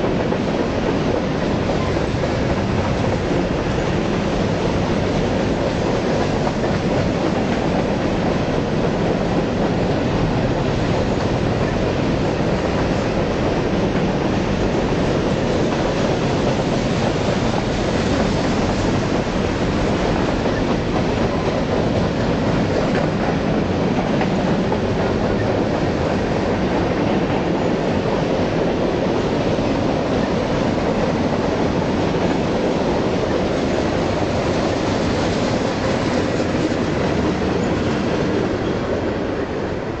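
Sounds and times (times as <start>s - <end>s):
freight train wheels on rail: 0.0s - 40.0s.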